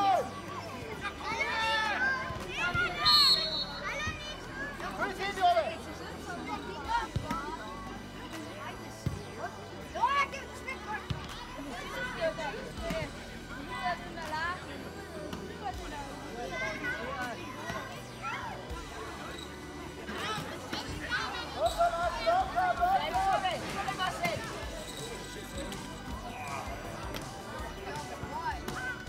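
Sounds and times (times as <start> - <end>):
people shouting and calling: 0.0 - 5.1, 20.1 - 24.8.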